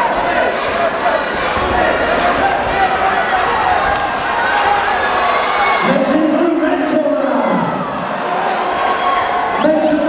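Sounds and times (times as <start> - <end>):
crowd cheering and shouting: 0.0 - 10.0.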